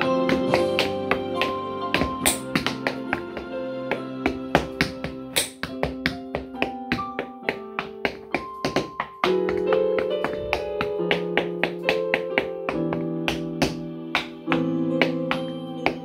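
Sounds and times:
dance shoes striking wooden board: 0:00.0 - 0:16.0
piano music: 0:00.0 - 0:16.0.

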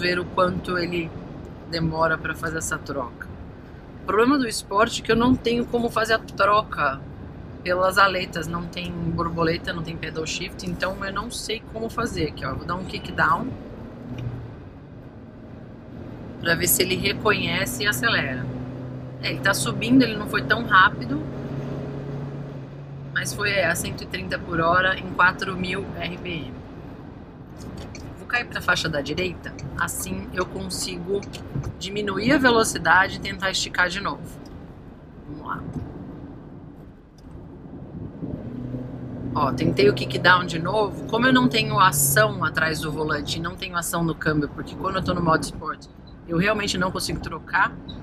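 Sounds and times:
car engine humming: 0:00.0 - 0:48.0
road and tyre rumble: 0:00.0 - 0:48.0.

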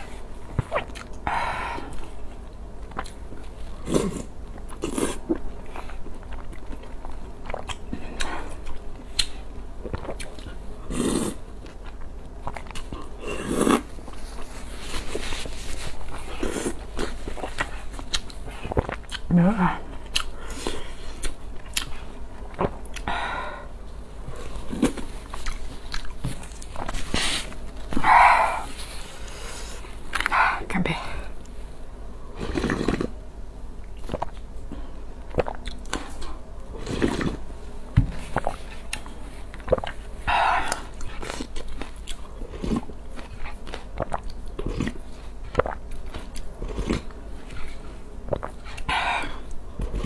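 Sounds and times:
person chewing and biting: 0:00.5 - 0:01.2, 0:02.8 - 0:19.3, 0:20.0 - 0:23.1, 0:24.4 - 0:29.5, 0:35.2 - 0:37.4, 0:38.3 - 0:50.0.

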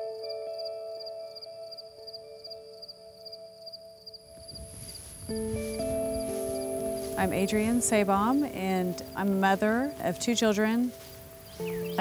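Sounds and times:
high insect whine: 0:00.0 - 0:12.0
insects chirping: 0:00.0 - 0:12.0
soft held-note music: 0:00.0 - 0:12.0
field ambience hiss: 0:04.3 - 0:12.0.

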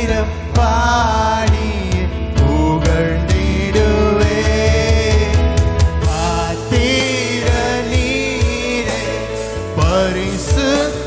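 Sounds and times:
drum kit: 0:00.0 - 0:11.0
keyboard: 0:00.0 - 0:11.0
man singing: 0:00.0 - 0:11.0
sharp drum hits: 0:05.0 - 0:11.0.

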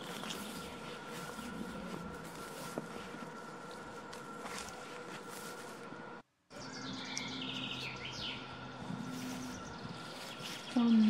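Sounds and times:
steady low hum: 0:00.0 - 0:11.0
songbird trilling: 0:06.6 - 0:11.0.

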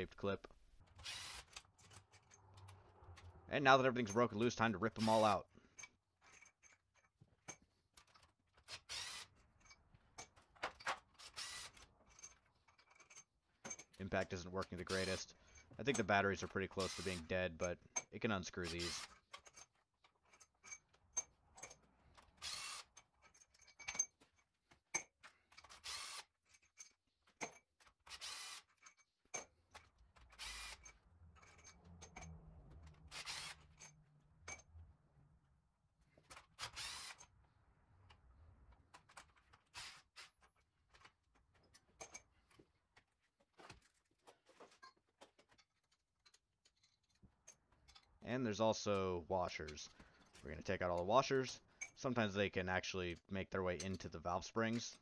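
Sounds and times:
cordless impact driver running: 0:01.0 - 0:01.5, 0:33.1 - 0:33.6, 0:36.6 - 0:37.2
metallic clinks of bolts and tools: 0:04.0 - 0:18.2, 0:18.8 - 0:34.8, 0:40.2 - 0:42.6, 0:43.7 - 0:48.3, 0:49.7 - 0:52.1.

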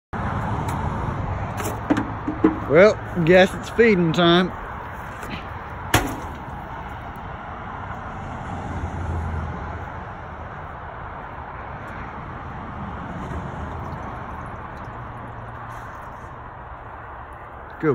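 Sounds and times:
sharp knock: 0:01.7 - 0:02.7, 0:05.9 - 0:06.5.

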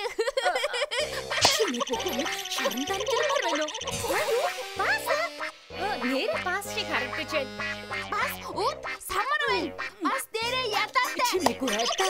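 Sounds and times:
background music: 0:00.9 - 0:12.0
cartoon character vocal sounds: 0:01.4 - 0:06.2, 0:08.0 - 0:12.0.

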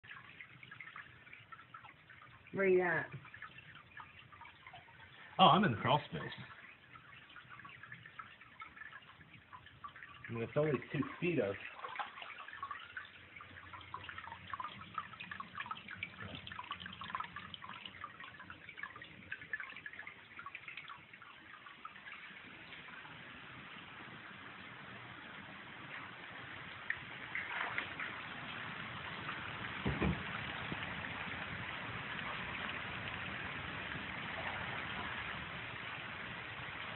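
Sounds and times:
water dripping and trickling: 0:00.0 - 0:36.9
knock: 0:29.8 - 0:30.3.

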